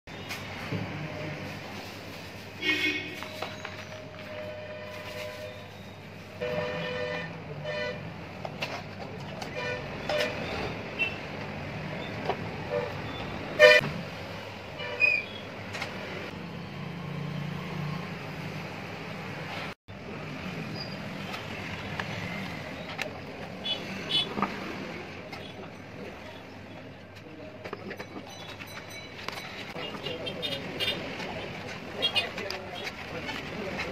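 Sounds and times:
street traffic: 0.1 - 33.9
vehicle horns honking: 2.6 - 8.1, 9.5 - 11.3, 12.6 - 13.8.

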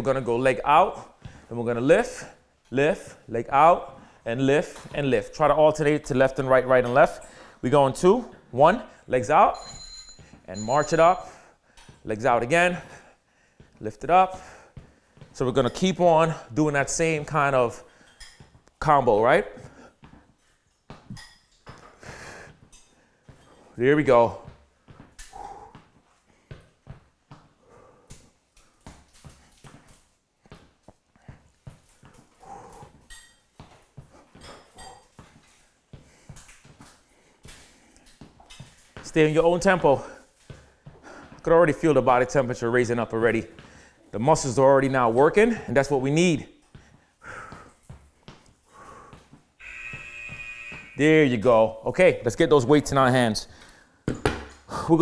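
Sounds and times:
sneakers tapping wooden floor: 11.9 - 16.4, 19.6 - 51.5
electronic buzzer tone: 49.6 - 51.4.

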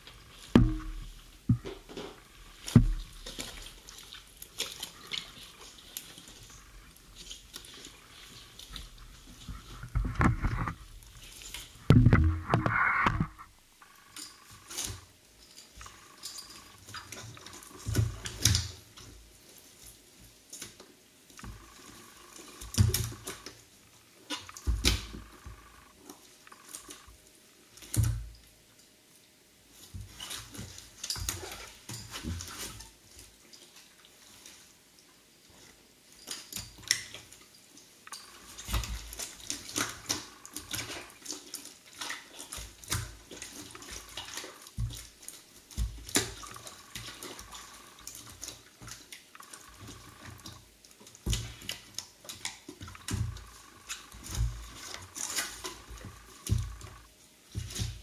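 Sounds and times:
gunge squelching: 0.2 - 15.0, 24.3 - 27.1, 45.8 - 50.6, 52.8 - 57.1
heavy thump: 0.6 - 1.7.

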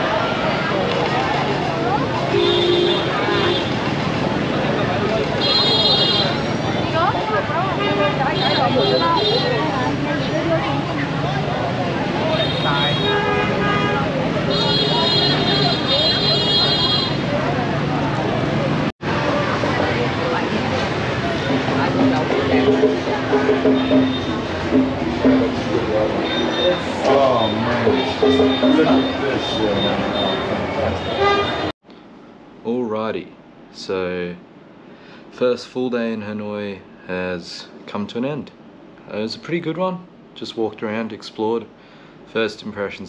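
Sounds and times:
crowd chatter: 0.0 - 31.7
people's voices: 0.0 - 31.7
traffic: 0.0 - 32.7, 38.5 - 39.1
vehicle horn: 2.3 - 3.8, 5.4 - 6.5, 12.3 - 17.3, 21.3 - 31.7
high steady tone: 21.3 - 30.6.

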